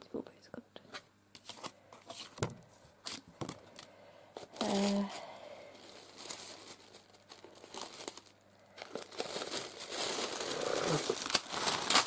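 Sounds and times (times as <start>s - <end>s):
tissue paper rustling: 4.4s - 12.0s.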